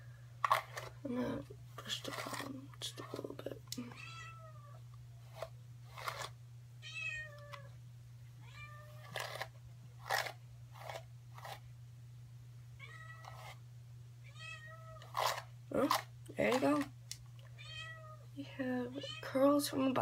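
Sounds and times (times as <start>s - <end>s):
cat meowing: 4.0s - 4.8s, 8.4s - 9.2s, 12.8s - 13.4s, 17.6s - 18.2s.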